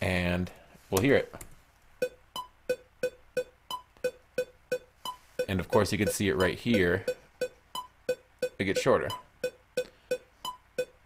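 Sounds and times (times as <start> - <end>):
metronome clicks: 3.4 - 7.2.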